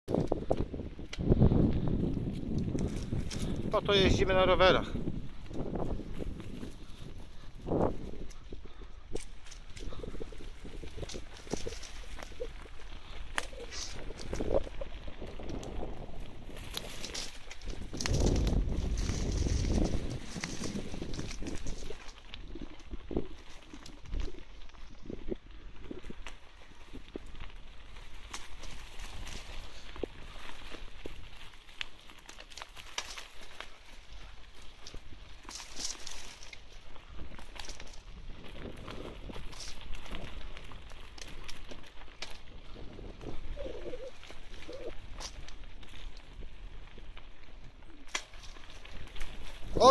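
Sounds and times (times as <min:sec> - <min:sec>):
bicycle frame rattling: 0:00.1 - 0:49.9
bicycle tyres crackling through leaves: 0:00.1 - 0:49.9.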